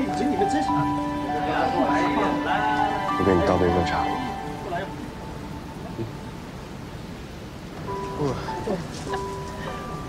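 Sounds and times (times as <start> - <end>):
heavy rain hiss: 0.0 - 10.0
soft background music: 0.0 - 10.0.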